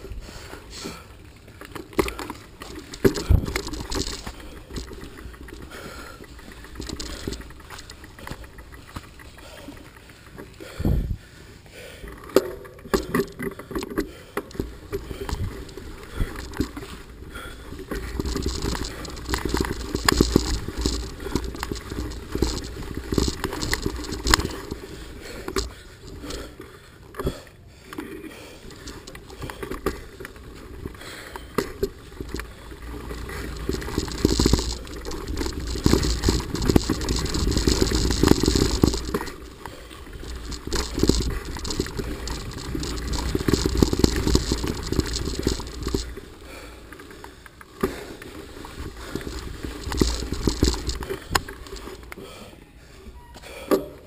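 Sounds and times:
tyre noise on dirt: 0:00.0 - 0:52.4
bike rattling over rough ground: 0:00.0 - 0:52.5
wind rumble on microphone: 0:10.8 - 0:11.2.

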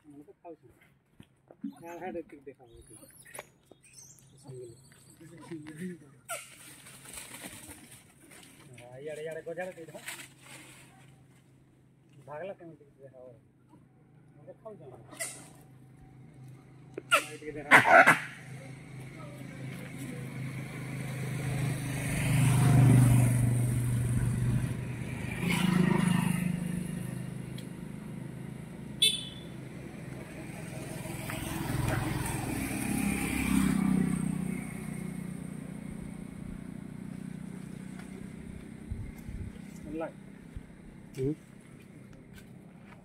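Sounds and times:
vehicles passing: 0:01.6 - 0:43.0.

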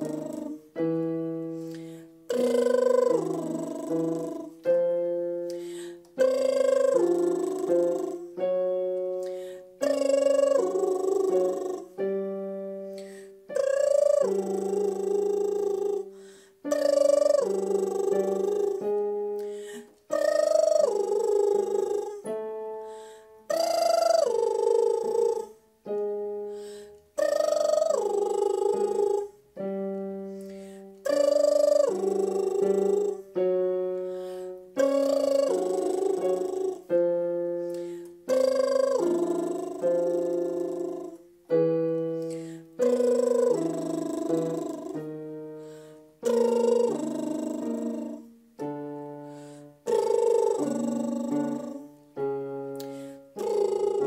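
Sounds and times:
woman doing lip trills: 0:00.0 - 0:54.0.

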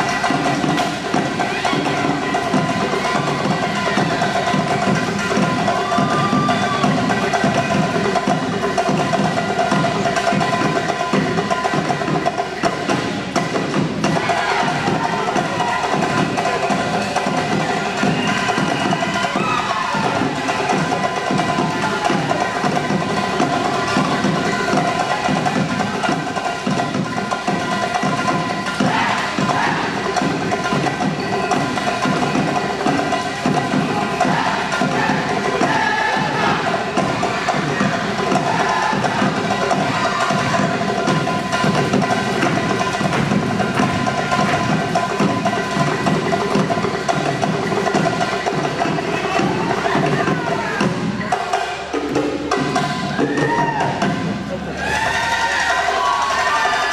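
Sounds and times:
drums and percussion beat: 0:00.0 - 0:56.9
live folk dance band: 0:00.0 - 0:56.9.

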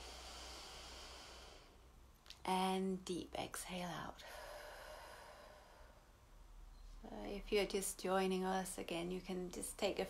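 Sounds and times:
person breathing in deeply: 0:00.0 - 0:01.8, 0:04.2 - 0:06.1.

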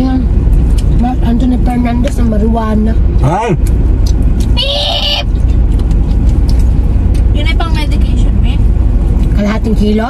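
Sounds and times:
car rumble from inside cabin: 0:00.0 - 0:10.0.

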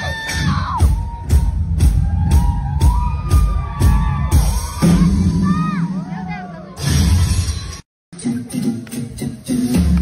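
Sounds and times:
live pop band music: 0:00.0 - 0:10.0.

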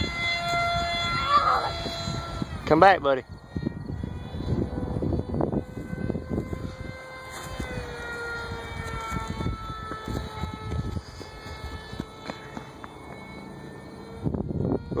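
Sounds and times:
model airplane motor whining: 0:00.0 - 0:15.0
wind buffeting microphone: 0:00.0 - 0:15.0.

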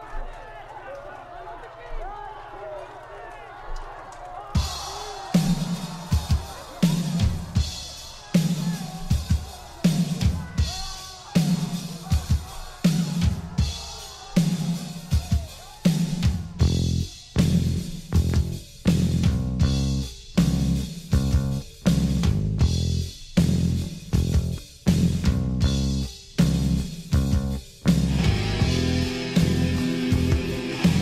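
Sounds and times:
drum kit: 0:04.4 - 0:31.0
heavy bass and guitar chords: 0:16.6 - 0:31.0
heavy metal song: 0:28.0 - 0:31.0
sustained guitar passage: 0:28.1 - 0:31.0.

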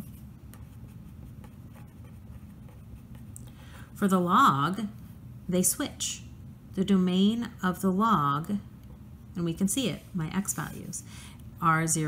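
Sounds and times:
marker writing on paper: 0:00.0 - 0:03.3
low steady room hum: 0:00.0 - 0:12.0.

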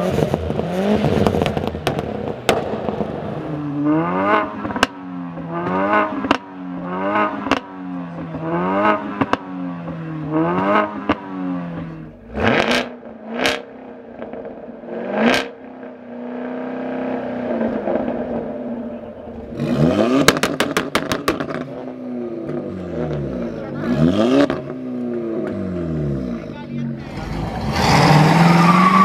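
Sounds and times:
car engines revving: 0:00.0 - 0:29.0
exhaust pops and cracks: 0:20.2 - 0:21.8.

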